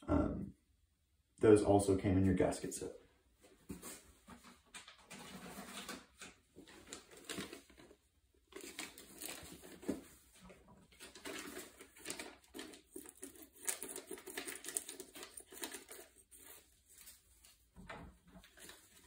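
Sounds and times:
packaging rustling and crinkling: 0:04.8 - 0:19.0.

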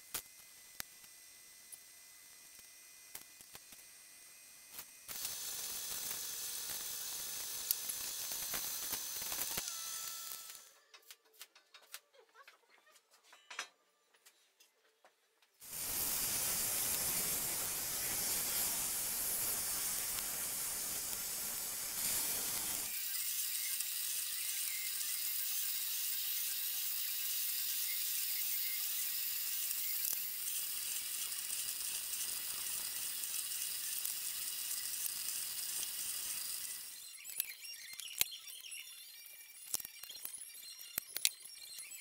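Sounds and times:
drill press drilling plastic: 0:04.7 - 0:10.8, 0:15.6 - 0:38.3.

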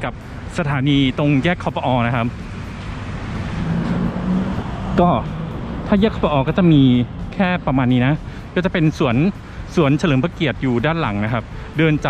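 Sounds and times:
engine hum: 0:00.0 - 0:12.0
rush of passing vehicles: 0:00.0 - 0:12.0.

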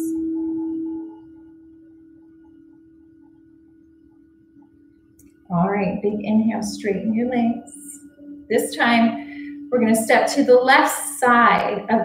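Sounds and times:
meditative bowl-like ringing tone: 0:00.0 - 0:12.0.

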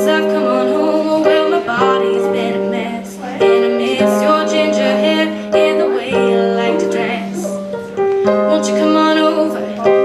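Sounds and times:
girl singing with vibrato: 0:00.0 - 0:10.0
keyboard chords: 0:00.0 - 0:10.0.

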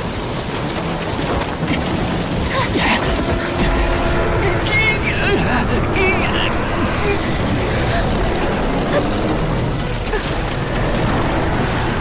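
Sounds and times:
rumbling battle sound effects: 0:00.0 - 0:12.0.

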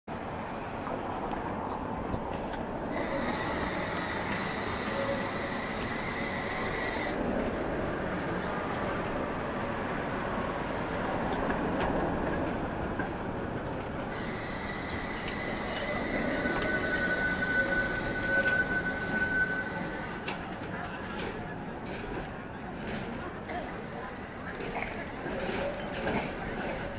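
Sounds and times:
tram rumbling on track: 0:00.1 - 0:26.9
tram wheels squealing: 0:02.1 - 0:09.0, 0:13.8 - 0:23.0
sharp wheel squeal: 0:02.9 - 0:07.2, 0:13.8 - 0:20.2.

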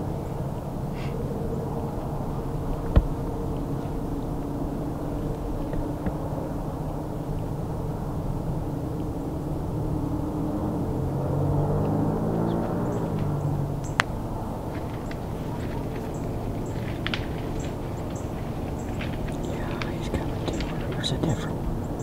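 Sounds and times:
distant engine drone: 0:00.0 - 0:22.0.

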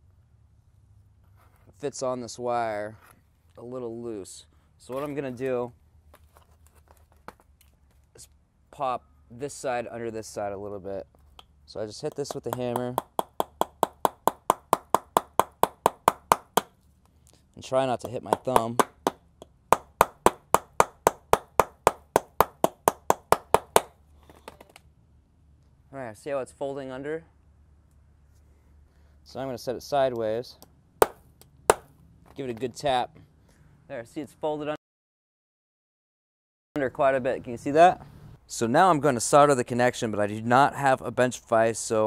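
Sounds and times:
hammer tapping metal lug: 0:12.1 - 0:16.7, 0:18.0 - 0:23.9.

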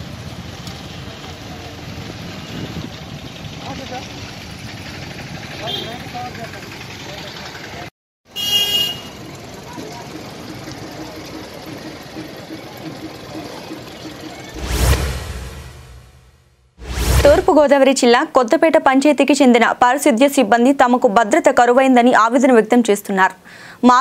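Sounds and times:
street traffic: 0:00.0 - 0:16.1
vehicle engine idling: 0:00.1 - 0:07.9, 0:09.1 - 0:14.6
short high-pitched sound: 0:14.4 - 0:17.6.

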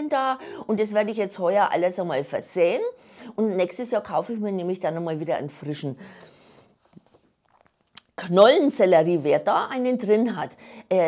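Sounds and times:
person talking: 0:00.0 - 0:06.0, 0:08.0 - 0:11.0
person breathing: 0:06.0 - 0:07.0
faint mouth clicks: 0:06.9 - 0:08.2.

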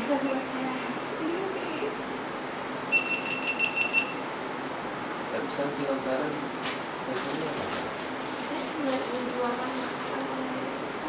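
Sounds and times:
high electronic beep: 0:02.9 - 0:04.2.

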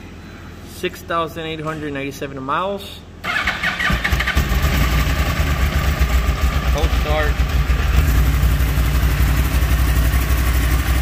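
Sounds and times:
motorcycle starter cranking: 0:03.3 - 0:05.4
motorcycle engine idling: 0:04.1 - 0:11.0.

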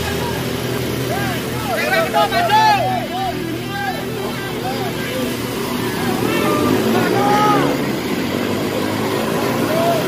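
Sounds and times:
pump engine running: 0:00.0 - 0:10.0.

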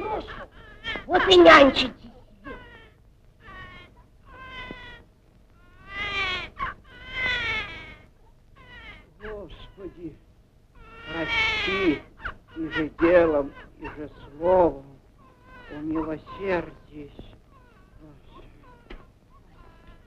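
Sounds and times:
drawn-out wailing cries: 0:00.0 - 0:05.0, 0:10.8 - 0:16.8.

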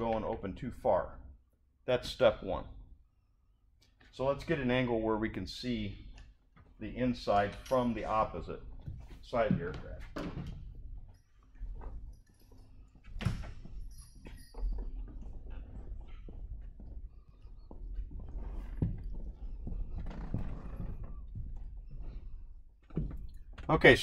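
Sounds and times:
footsteps on hard floor: 0:08.8 - 0:10.6, 0:13.3 - 0:23.3.

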